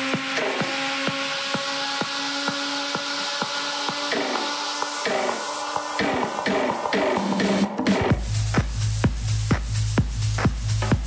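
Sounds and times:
rippling synth pattern: 0.0s - 8.4s.

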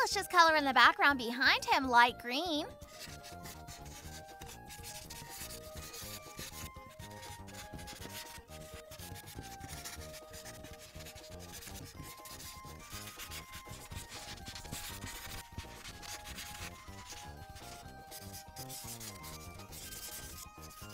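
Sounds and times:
quiet background music: 0.0s - 20.9s
marker tip rubbing on paper: 2.8s - 20.9s.

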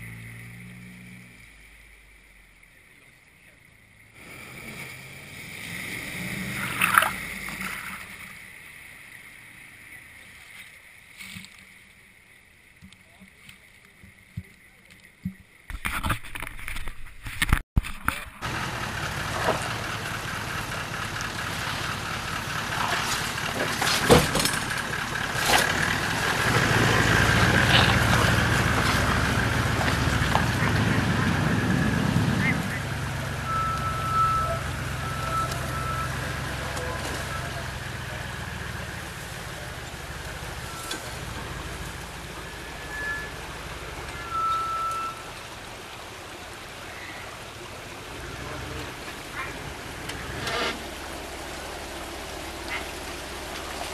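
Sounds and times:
vehicle engine running under load: 0.0s - 10.4s, 18.3s - 53.9s.

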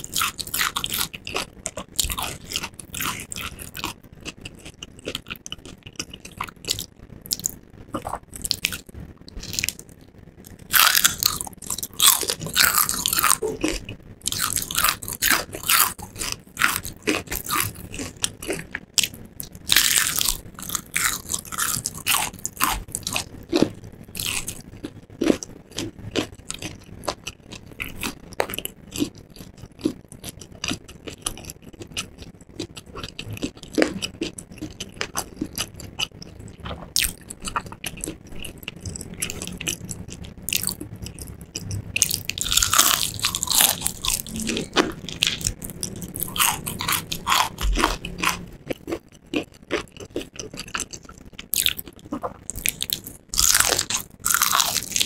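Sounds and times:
crunchy chewing of fried chicken: 0.0s - 55.0s.

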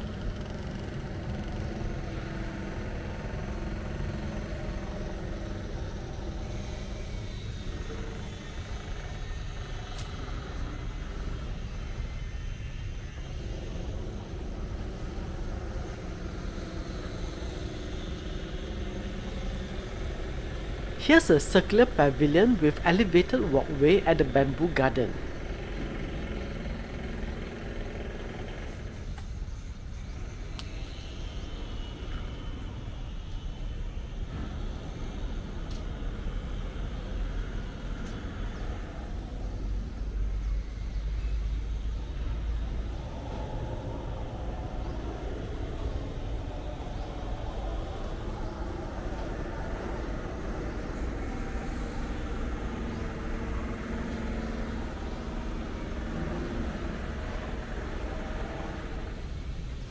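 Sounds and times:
low outdoor rumble: 0.0s - 59.9s.

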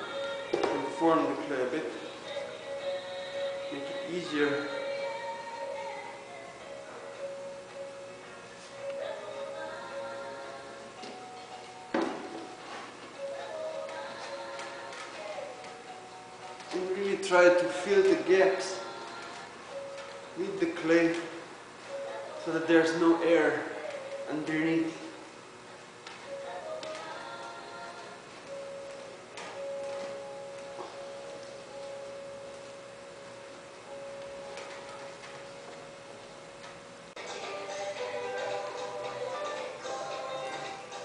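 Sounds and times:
faint background music: 0.0s - 41.0s.

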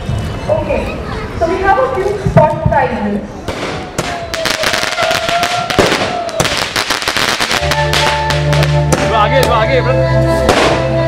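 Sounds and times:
music with bass line: 7.6s - 11.0s.

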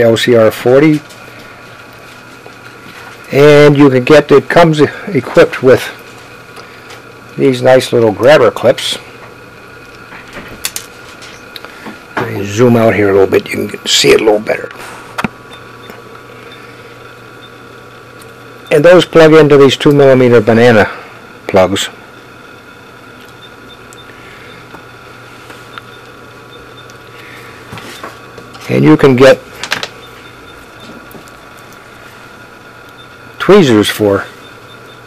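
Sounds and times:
low electrical hum: 0.0s - 35.0s.

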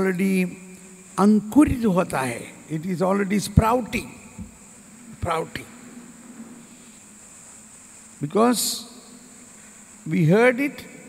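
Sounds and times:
even hiss: 0.0s - 11.0s
faint low hum: 0.0s - 11.0s.

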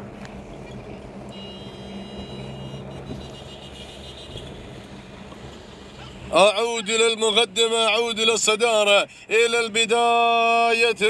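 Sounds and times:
vehicle engine running: 0.0s - 9.3s.

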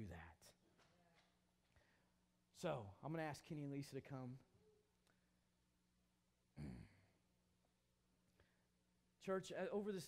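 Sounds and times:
man sighing: 6.6s - 7.1s.

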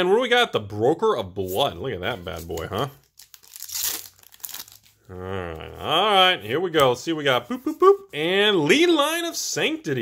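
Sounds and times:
foil wrapper crinkling and tearing: 3.0s - 5.0s.

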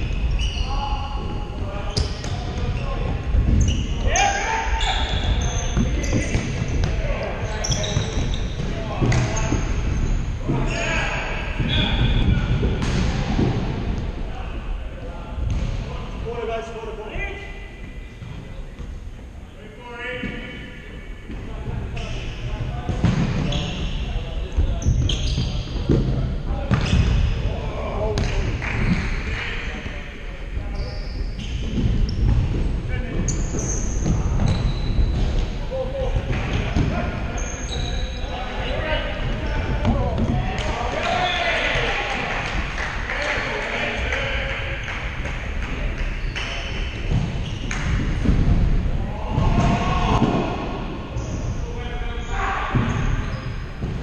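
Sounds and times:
shoes squeaking on court: 1.8s - 4.1s, 4.8s - 10.8s, 24.8s - 25.8s, 33.3s - 35.5s, 37.3s - 39.7s.

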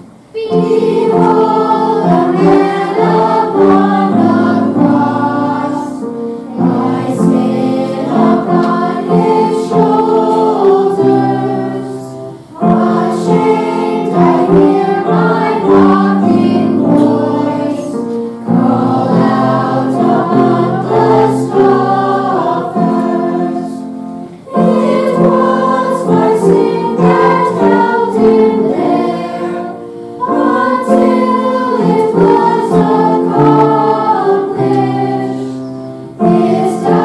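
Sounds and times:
children's choir singing a hymn: 0.0s - 37.0s.

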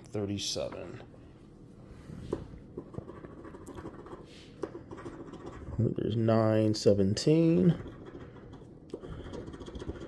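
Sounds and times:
coin scratching lottery ticket: 2.9s - 6.0s, 7.7s - 10.0s.

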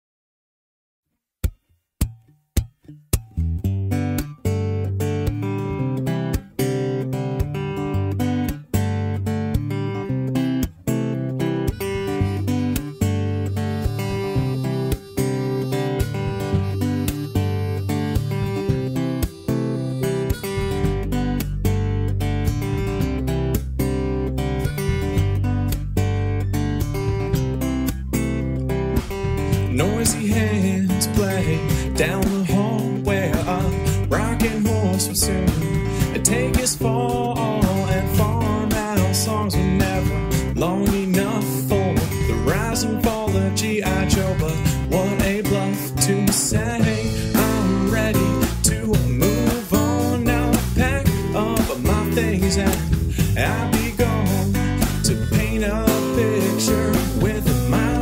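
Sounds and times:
acoustic guitar strumming: 1.4s - 58.0s
deep bass: 15.6s - 58.0s.

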